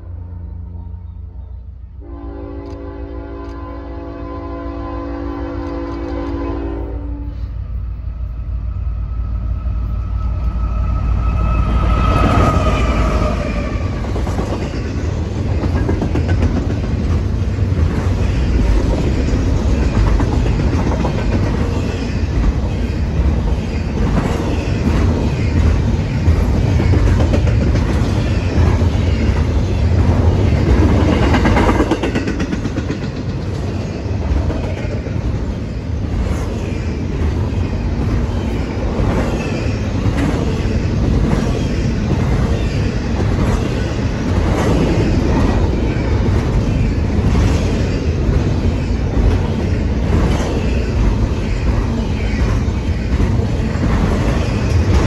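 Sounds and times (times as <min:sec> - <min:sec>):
locomotive rumble and whine: 0:00.0 - 0:55.0
locomotive horn: 0:02.0 - 0:07.5
train wheels clacking: 0:10.4 - 0:55.0.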